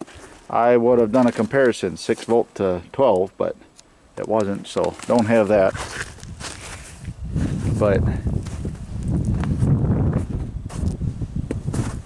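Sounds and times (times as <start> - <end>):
footsteps walking: 0.0 - 2.4, 4.2 - 12.0
low microphone rumble: 5.5 - 12.0.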